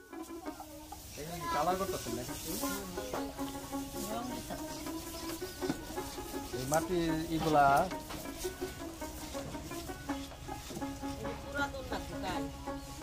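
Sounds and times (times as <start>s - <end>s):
background music: 0.0s - 13.0s
chicken calling: 0.0s - 13.0s.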